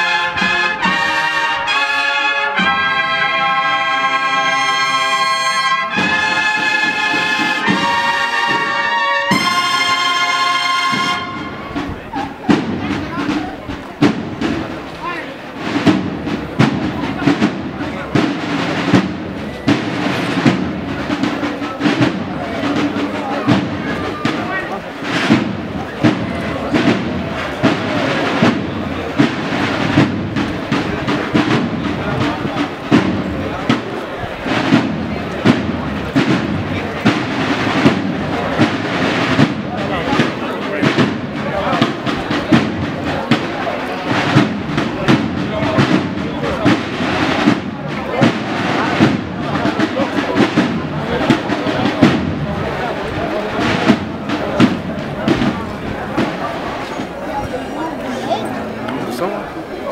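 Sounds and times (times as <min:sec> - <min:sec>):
cornet and drum band march: 0:00.0 - 0:59.9
crowd voices: 0:00.0 - 0:59.9
snare drum strikes: 0:05.9 - 0:10.1, 0:10.8 - 0:57.1.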